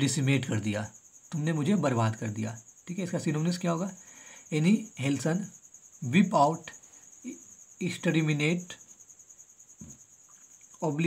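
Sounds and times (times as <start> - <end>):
person speaking: 10.8 - 11.0.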